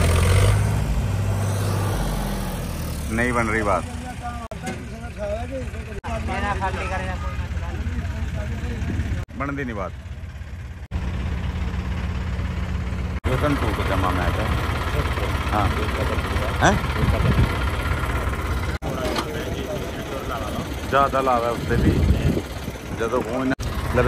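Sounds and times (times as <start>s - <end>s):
diesel engine idling: 0.0s - 24.0s
men talking: 3.1s - 10.0s, 13.2s - 17.6s, 18.8s - 24.0s.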